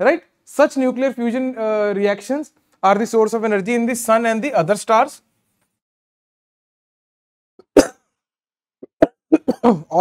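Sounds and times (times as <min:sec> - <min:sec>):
man speaking: 0:00.0 - 0:05.3.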